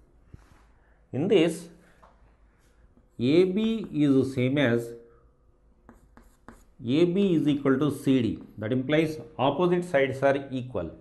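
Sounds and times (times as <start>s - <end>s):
chalk writing on chalkboard: 5.8s - 6.8s.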